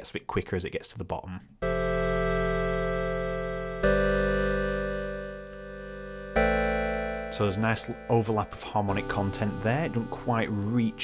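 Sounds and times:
synthesizer chords: 1.6 - 11.0.

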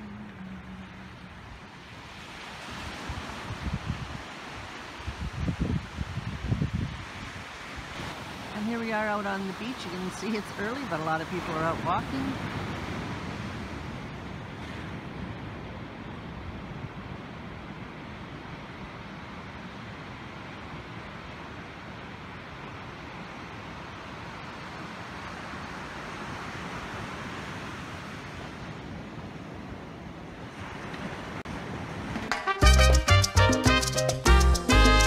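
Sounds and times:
ocean surf on sandy beach: 0.0 - 35.0.

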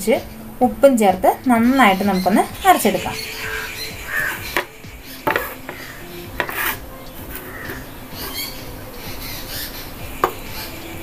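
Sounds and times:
plate and steel jar clinking: 4.5 - 8.4.

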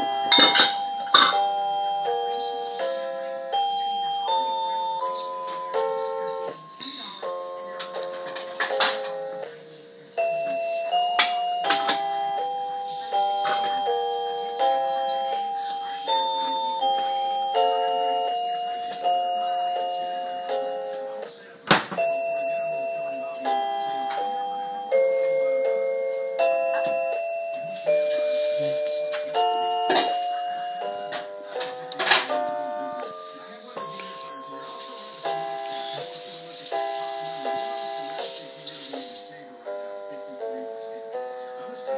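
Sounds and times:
toy electronic keyboard notes: 0.0 - 41.9.

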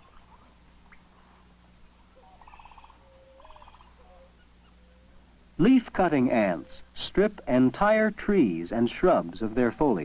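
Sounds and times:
trilled animal calls: 0.0 - 1.2, 2.1 - 5.2
film soundtrack hiss: 0.0 - 10.0.

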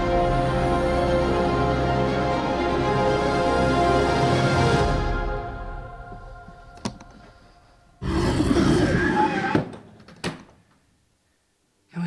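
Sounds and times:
trailer music: 0.0 - 8.0.

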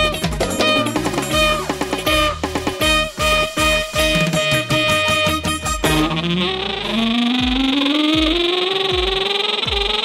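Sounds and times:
deep kick drum: 7.4 - 10.0.

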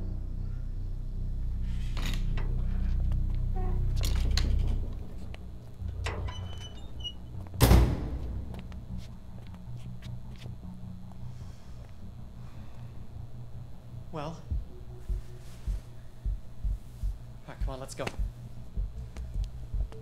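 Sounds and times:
low rumbling drone: 0.0 - 17.4
loud sharp thud: 7.6 - 8.4.

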